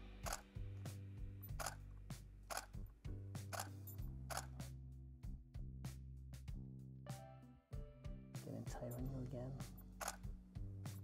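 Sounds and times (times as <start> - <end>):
background music with bass line: 0.0 - 11.0
camera shutter clicks: 0.2 - 0.4, 2.5 - 2.8, 3.5 - 4.6, 10.0 - 10.2.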